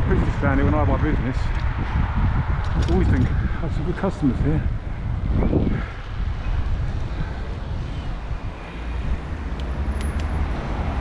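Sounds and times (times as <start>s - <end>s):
wind noise on microphone: 0.0s - 11.0s.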